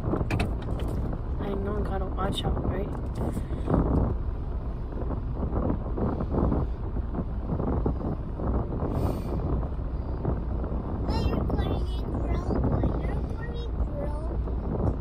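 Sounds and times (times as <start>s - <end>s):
low rumble inside car cabin: 0.0s - 15.0s
rustling on phone microphone: 4.9s - 13.4s.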